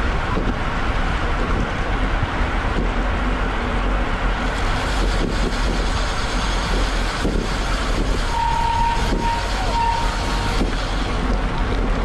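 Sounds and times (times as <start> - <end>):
wind buffeting microphone: 0.0 - 12.0
steady high beep: 8.4 - 10.5.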